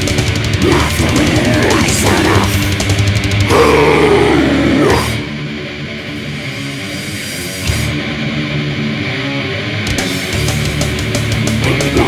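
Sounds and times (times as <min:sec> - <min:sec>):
death metal band playing: 0:00.0 - 0:12.0
distorted electric guitar: 0:00.0 - 0:12.0.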